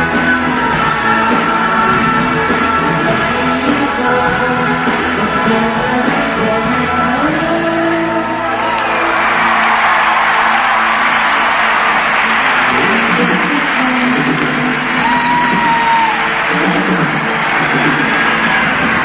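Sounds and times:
live band playing: 0.0 - 19.0
crowd cheering and whooping: 7.7 - 19.0.

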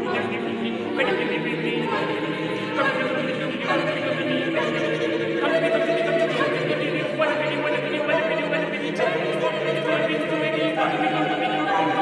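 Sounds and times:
a cappella choir singing: 0.0 - 12.0.

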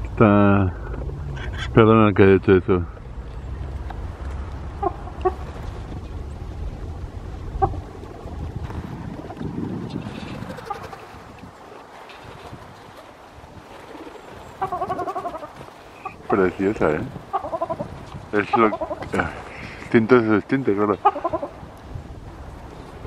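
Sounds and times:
low rumble: 0.0 - 11.4
bird calls: 0.7 - 6.6, 7.4 - 8.1, 9.2 - 11.3, 13.8 - 21.7.

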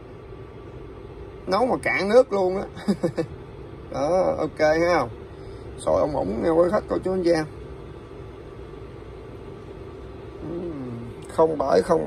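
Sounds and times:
water boiling with bubbling hiss: 0.0 - 12.0.

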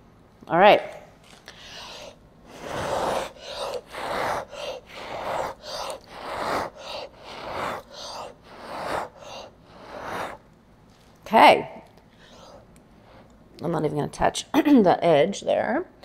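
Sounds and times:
person blowing breathy puffs: 1.4 - 10.4, 12.2 - 13.2.

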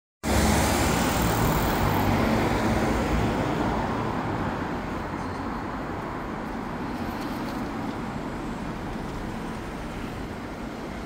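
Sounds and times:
street traffic rumble: 0.2 - 11.0.

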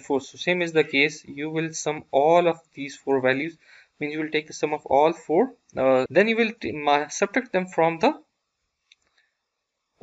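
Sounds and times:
man's voice: 0.0 - 8.2
stylus clicking on screen: 8.8 - 9.3.

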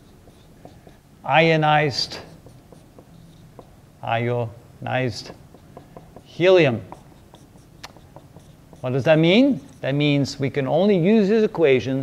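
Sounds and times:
marker pen writing on whiteboard: 0.0 - 10.2.

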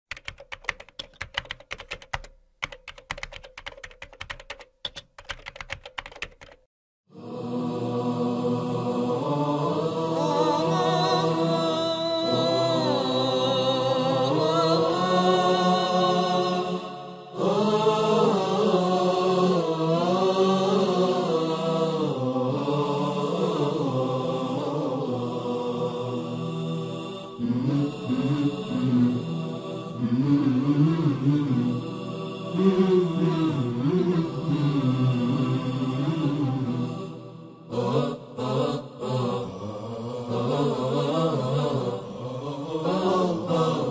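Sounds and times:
rapid keystroke clicks: 0.1 - 6.7
low vocal hum: 27.2 - 43.9.

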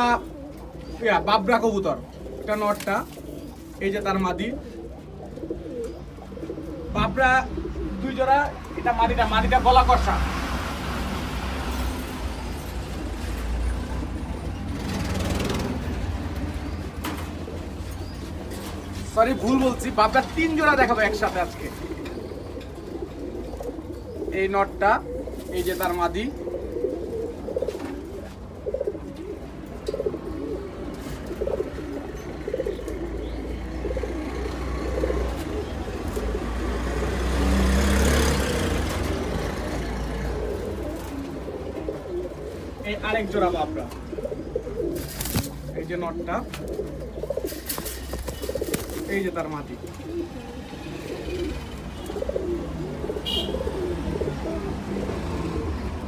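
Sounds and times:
low rumble of road traffic: 0.0 - 56.0
pigeons cooing: 0.0 - 56.0.

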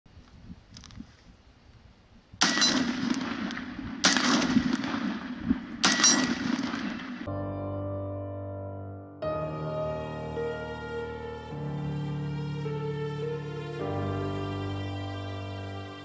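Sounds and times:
rifle bursts with ringing tail: 2.4 - 7.3
music: 7.3 - 16.0.

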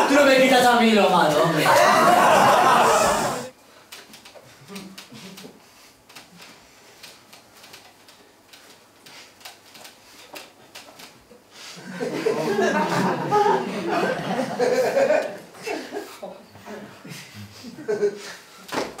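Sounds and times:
people laughing and chuckling: 1.5 - 3.5, 11.8 - 18.7.

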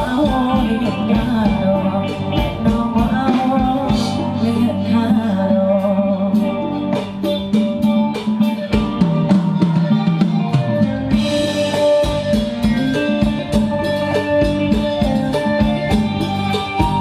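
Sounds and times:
steady drum beat: 0.0 - 4.7, 5.7 - 17.0
live band dance music: 0.0 - 17.0.

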